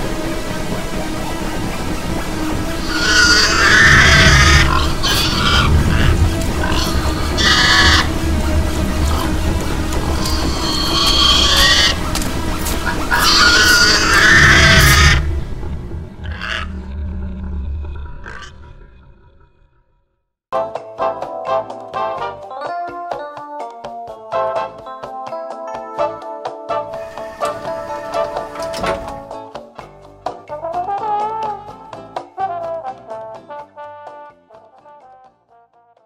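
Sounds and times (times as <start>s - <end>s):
low rumbling drone: 0.0s - 20.0s
harsh shrieking screeches: 2.8s - 8.2s, 10.0s - 12.1s, 12.8s - 15.4s, 16.2s - 18.8s.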